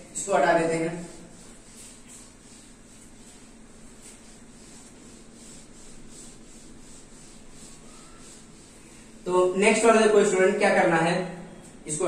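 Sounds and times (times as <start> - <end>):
whiteboard being wiped: 0.0 - 9.9.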